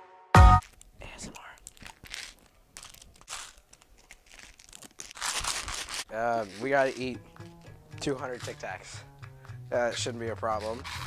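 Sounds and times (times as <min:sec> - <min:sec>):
label peeling off plastic container: 0:01.6 - 0:09.0.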